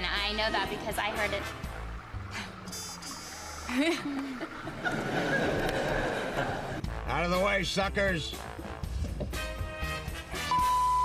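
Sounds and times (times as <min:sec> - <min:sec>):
woman laughing breathily: 0:03.7 - 0:04.7.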